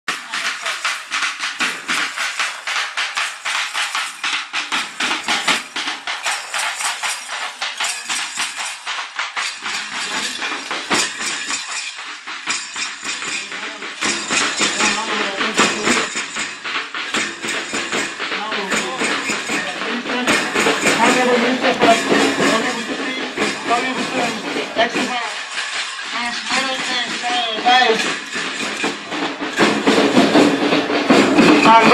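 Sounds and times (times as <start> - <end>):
voices: 0.1 - 1.2, 6.2 - 9.0, 13.2 - 28.4, 30.6 - 31.9
drummers beating barrel drums: 0.1 - 31.9.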